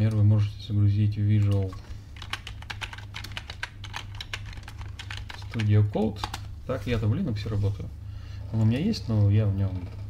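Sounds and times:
steady low hum: 0:00.0 - 0:10.0
computer keyboard typing: 0:01.4 - 0:06.5.

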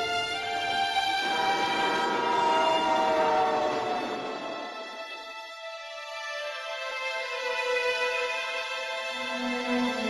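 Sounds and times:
train running noise: 0:01.1 - 0:05.3
steam locomotive whistle: 0:01.2 - 0:05.1.

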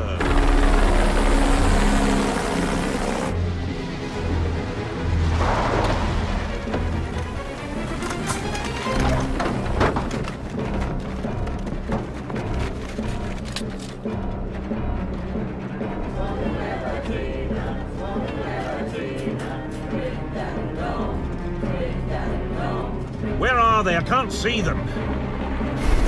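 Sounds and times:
orchestral action film score: 0:00.0 - 0:26.0.

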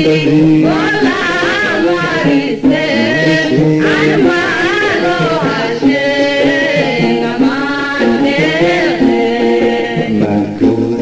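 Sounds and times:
voices singing a song: 0:00.0 - 0:11.0.

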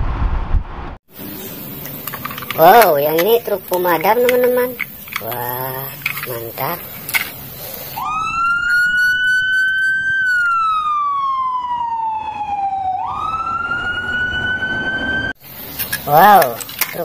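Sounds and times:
fire engine siren wailing: 0:08.0 - 0:15.4.

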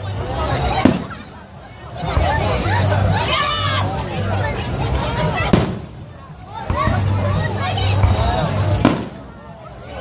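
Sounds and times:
firework bang: 0:00.8 - 0:01.2, 0:05.5 - 0:06.0, 0:08.8 - 0:09.3.

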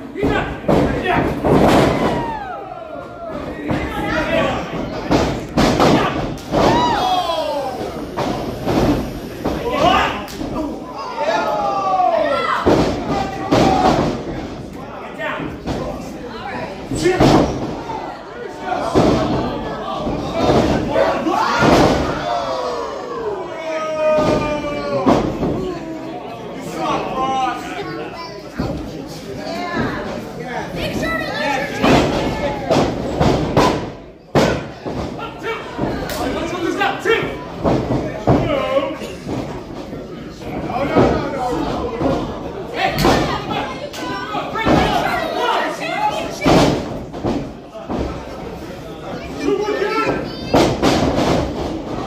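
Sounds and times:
crowd voices: 0:00.0 - 0:52.0
spectators shouting: 0:05.9 - 0:08.2, 0:20.8 - 0:25.2.

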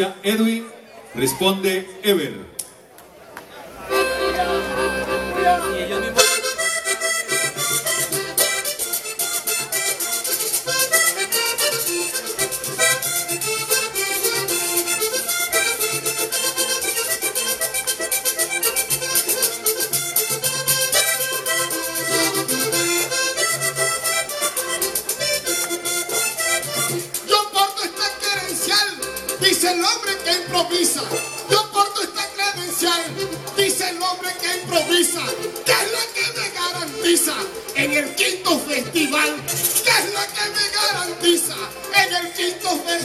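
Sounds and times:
accordion playing: 0:03.8 - 0:43.0
scraped guiro rhythm: 0:03.9 - 0:43.0
hand drum rhythm: 0:04.2 - 0:43.0.

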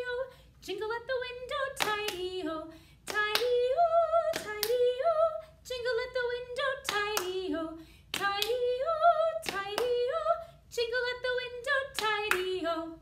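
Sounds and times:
woman singing unaccompanied: 0:00.0 - 0:13.0
hand claps: 0:01.8 - 0:02.3, 0:03.1 - 0:03.6, 0:04.3 - 0:04.9, 0:06.8 - 0:07.4, 0:08.1 - 0:08.6, 0:09.4 - 0:10.0, 0:12.0 - 0:12.6.

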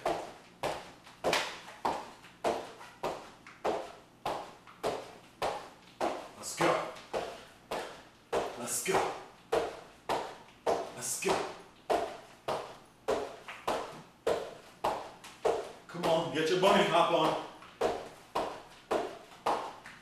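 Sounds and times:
feet thumping on hardwood floor: 0:00.0 - 0:20.0.

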